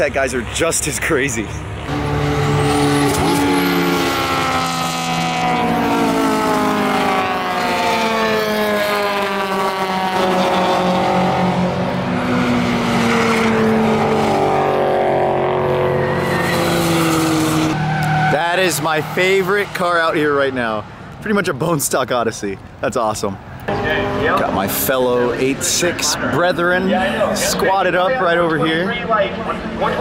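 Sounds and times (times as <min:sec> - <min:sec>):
race cars passing at speed: 0:00.0 - 0:21.7, 0:23.4 - 0:30.0.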